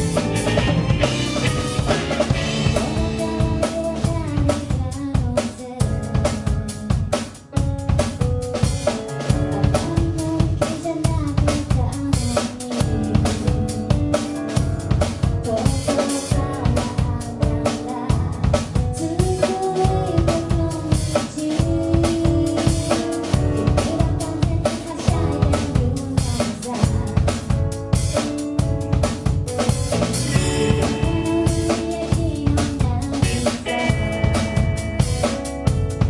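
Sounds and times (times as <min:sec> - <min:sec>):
electric guitar: 0:00.0 - 0:04.0, 0:27.9 - 0:36.0
drum kit beat: 0:00.0 - 0:36.0
electric bass: 0:00.0 - 0:36.0
keyboard: 0:00.0 - 0:36.0
woman singing: 0:02.5 - 0:07.2, 0:09.3 - 0:14.2, 0:15.4 - 0:27.6, 0:30.4 - 0:34.7.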